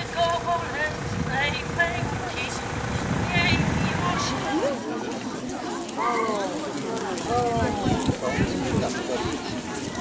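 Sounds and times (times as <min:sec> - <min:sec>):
low steady rumble: 0:00.0 - 0:04.5
crowd chatter: 0:00.0 - 0:10.0.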